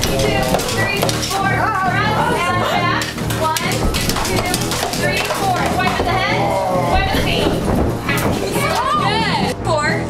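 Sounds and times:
background music: 0.0s - 10.0s
young people chattering: 0.0s - 10.0s.

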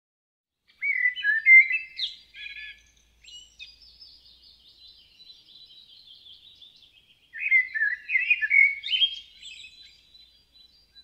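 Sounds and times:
bird singing whistled notes: 0.7s - 11.0s.

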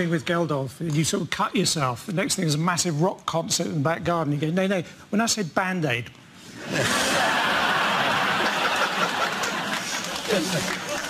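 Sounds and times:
studio audience laughing: 6.6s - 11.0s.

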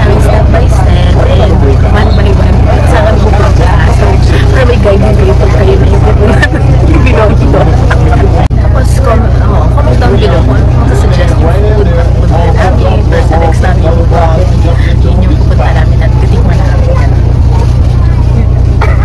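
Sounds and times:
bus engine drone: 0.0s - 19.0s
voices talking: 0.0s - 19.0s.

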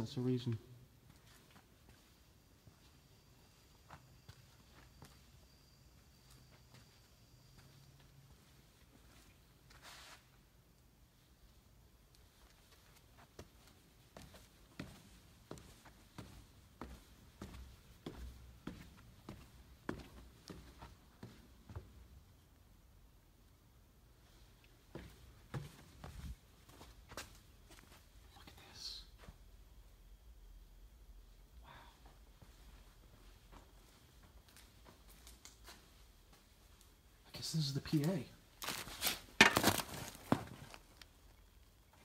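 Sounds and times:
soft rustle: 8.3s - 10.5s
footsteps: 12.3s - 22.0s, 24.9s - 28.1s.

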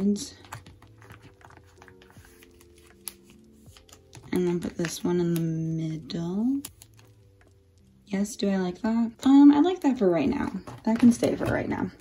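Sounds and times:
soft background music: 0.0s - 12.0s
photocards sliding in plastic sleeves: 0.4s - 5.4s.

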